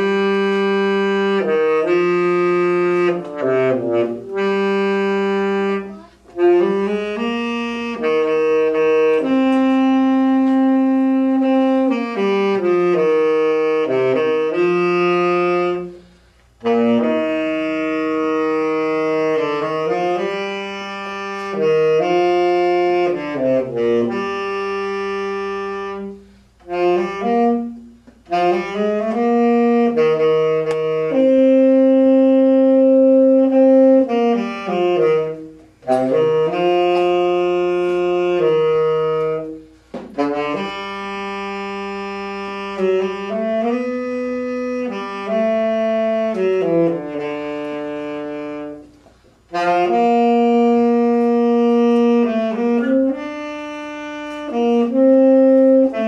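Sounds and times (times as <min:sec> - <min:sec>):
saxophone jazz solo: 0:00.0 - 0:56.0.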